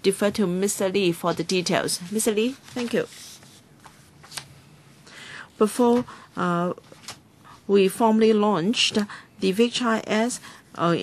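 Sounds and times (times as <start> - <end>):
papers rustling: 1.3 - 4.5, 6.8 - 7.2.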